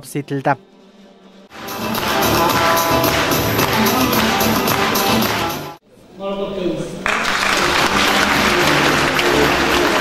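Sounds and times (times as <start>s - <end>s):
music playing: 0.0s - 5.8s, 7.3s - 10.0s
audience applause: 2.0s - 5.6s, 7.0s - 10.0s.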